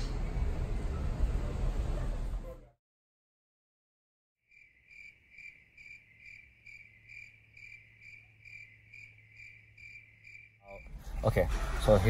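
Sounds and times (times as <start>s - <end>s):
faint crickets chirping: 4.5s - 11.4s.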